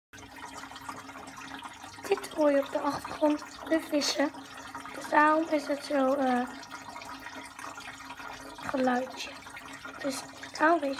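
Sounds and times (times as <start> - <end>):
aquarium filter bubbling water: 0.1 - 10.9.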